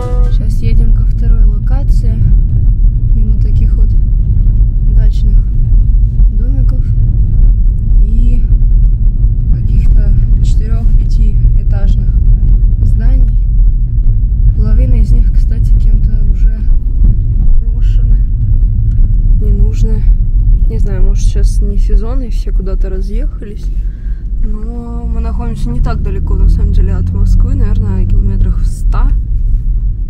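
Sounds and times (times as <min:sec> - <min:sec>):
car interior rumble: 0:00.0 - 0:30.0.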